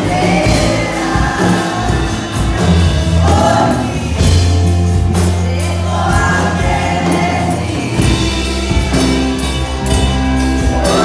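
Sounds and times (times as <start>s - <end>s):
group of voices singing: 0.0s - 11.0s
held bass notes: 0.0s - 11.0s.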